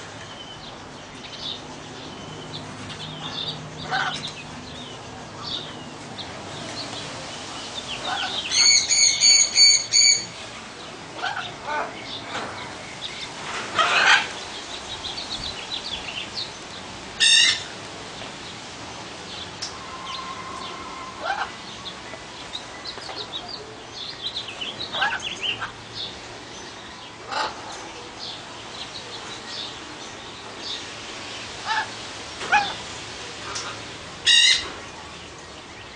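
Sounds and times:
parrots chirping and whistling: 0:08.0 - 0:10.3
parrots squawking harshly: 0:13.8 - 0:14.3, 0:17.2 - 0:17.6, 0:20.2 - 0:21.6, 0:34.2 - 0:34.6.

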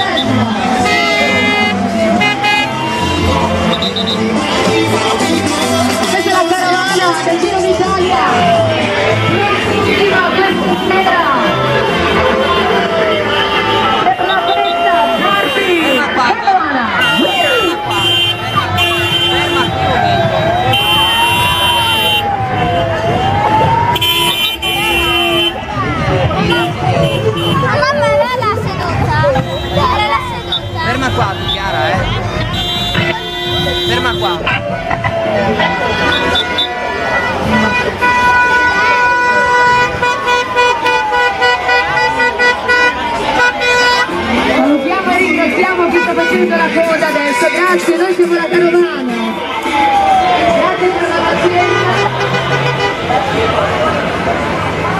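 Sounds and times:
wailing siren: 0:00.0 - 0:04.0, 0:06.2 - 0:16.3, 0:17.1 - 0:26.9, 0:29.3 - 0:46.0, 0:47.0 - 0:54.9
vehicle horn blasts: 0:00.0 - 0:04.3, 0:10.4 - 0:16.1, 0:17.0 - 0:22.2, 0:24.0 - 0:25.6, 0:29.3 - 0:34.4, 0:35.6 - 0:44.2, 0:51.6 - 0:53.1
crowd chatter: 0:00.0 - 0:54.9.

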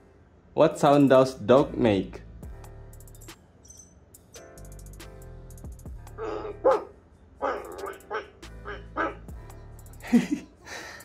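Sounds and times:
dog barks through small speaker: 0:06.2 - 0:09.3.

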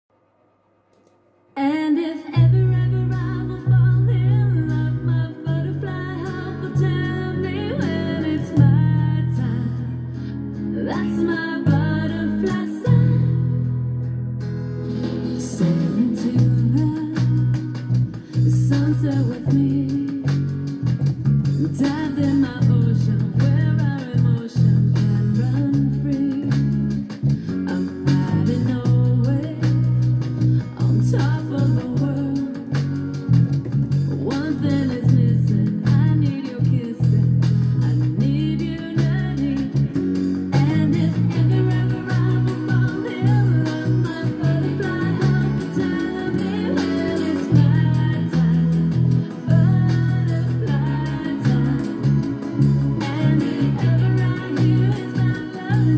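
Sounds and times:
fingerstyle electric bass: 0:02.3 - 0:55.9
electronic dance-pop music: 0:14.6 - 0:55.9.

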